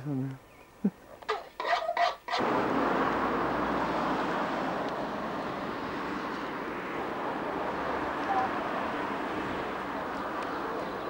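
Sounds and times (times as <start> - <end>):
outdoor rushing noise: 2.3 - 11.0.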